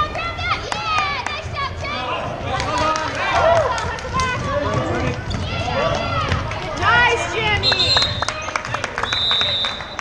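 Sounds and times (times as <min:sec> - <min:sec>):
sneakers squeaking on hardwood: 0:04.8 - 0:06.1.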